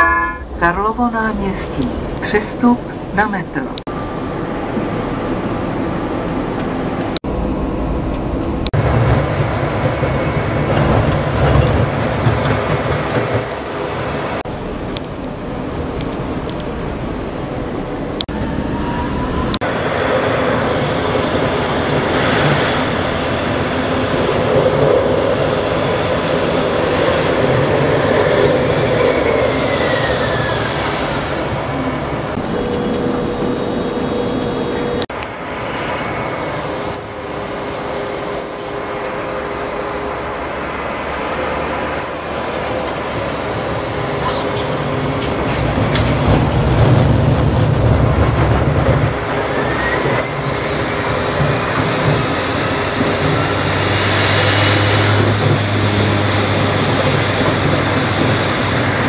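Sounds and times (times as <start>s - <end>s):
tram motors and wheels on rails: 0.0s - 59.0s
tram motor whine: 14.9s - 59.0s.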